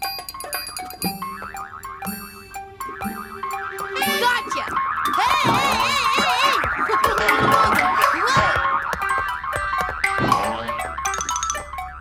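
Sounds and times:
light children's music: 0.0 - 12.0
cartoon boing sound effects: 1.2 - 11.6.

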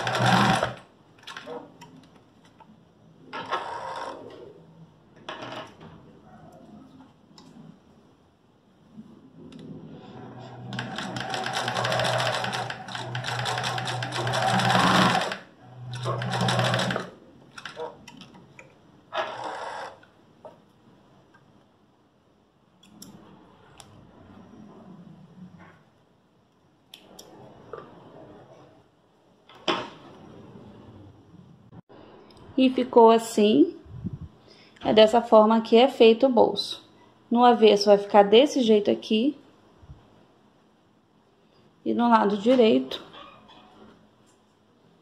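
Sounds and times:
sewing machine stitching: 0.0 - 1.7, 10.0 - 18.0, 19.1 - 20.1.

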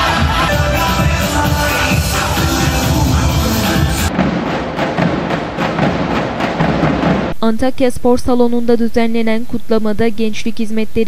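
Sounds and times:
electronic dance music: 0.0 - 7.3
drums beaten with sticks: 0.0 - 7.4.

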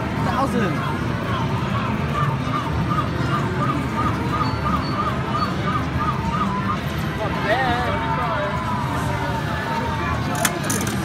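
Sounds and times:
casino background din: 0.0 - 11.0.

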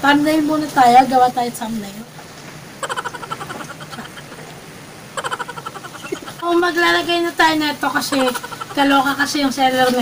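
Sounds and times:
woman laughing: 2.8 - 4.5, 5.2 - 6.5, 7.8 - 9.3.

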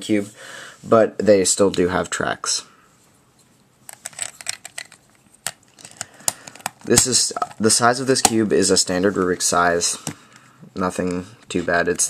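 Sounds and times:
plastic puzzle cube clicking: 3.9 - 6.9.

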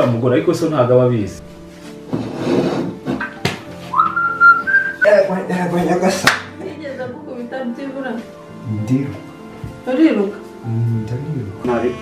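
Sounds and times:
person whistling two notes: 3.9 - 5.2.

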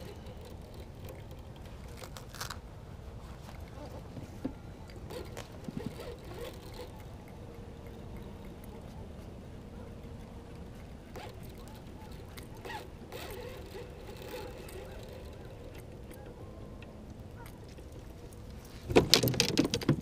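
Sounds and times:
fishing tackle clicks and knocks: 0.0 - 2.7, 3.5 - 20.0.

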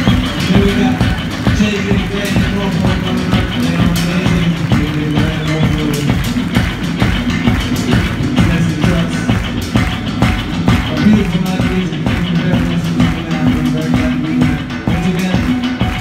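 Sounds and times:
drum kit: 0.0 - 16.0
electric bass: 0.0 - 16.0.

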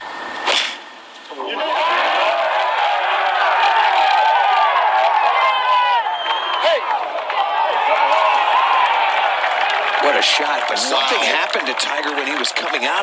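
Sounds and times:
crowd cheering and shouting: 1.3 - 13.0.

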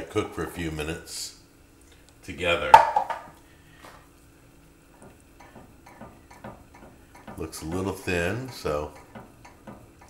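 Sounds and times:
gravy simmering with small pops: 3.3 - 10.0.

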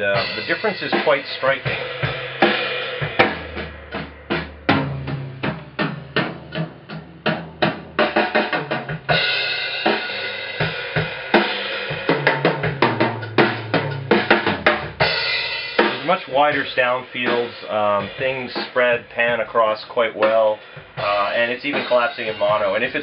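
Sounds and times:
cymbals washing: 0.0 - 23.0
drum kit playing a groove: 0.0 - 23.0.

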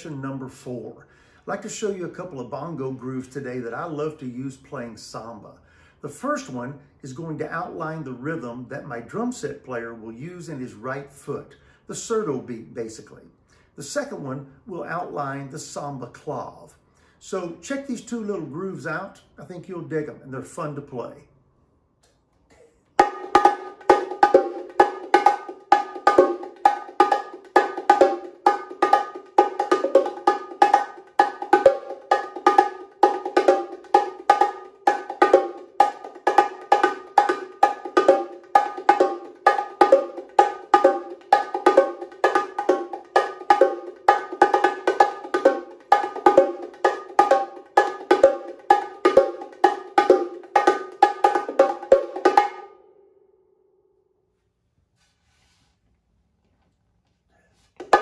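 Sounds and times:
bongos played by hand: 23.0 - 52.8, 57.8 - 58.0.

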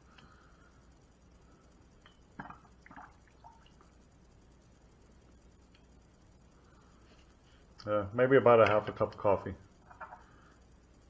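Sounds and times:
small drips: 2.0 - 4.0.

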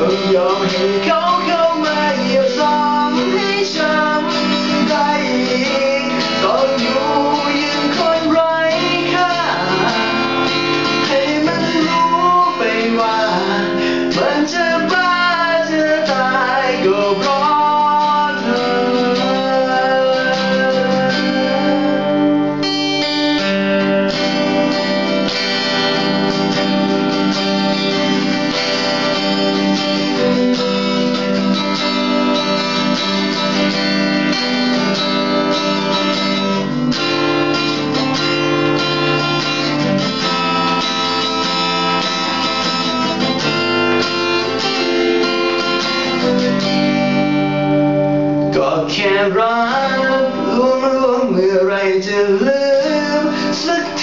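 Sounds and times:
acoustic guitar strummed: 0.0 - 54.0.

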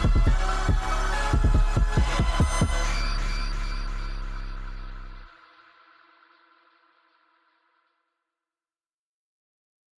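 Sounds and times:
sustained chord: 0.0 - 5.9
held deep bass note: 0.2 - 5.3.

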